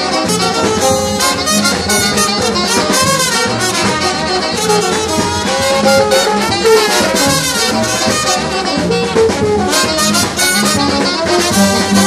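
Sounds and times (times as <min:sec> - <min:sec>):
brass band playing: 0:00.0 - 0:12.0
drum beat: 0:00.0 - 0:12.0.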